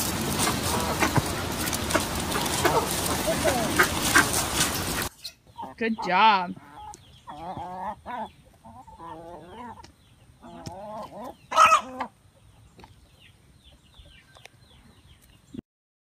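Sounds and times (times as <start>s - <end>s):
hen clucking: 0.0s - 14.9s.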